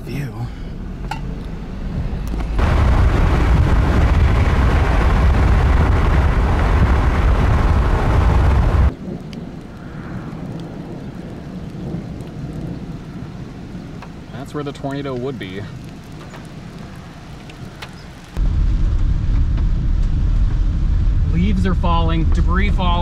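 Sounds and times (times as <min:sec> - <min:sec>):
wind buffeting microphone: 0:00.9 - 0:14.4, 0:15.0 - 0:23.0.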